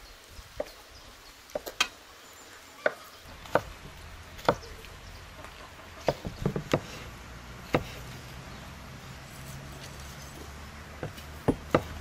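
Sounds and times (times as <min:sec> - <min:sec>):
knife chopping on wooden board: 0:02.8 - 0:03.8, 0:04.4 - 0:04.8, 0:06.0 - 0:07.0, 0:07.7 - 0:08.0, 0:11.0 - 0:12.0.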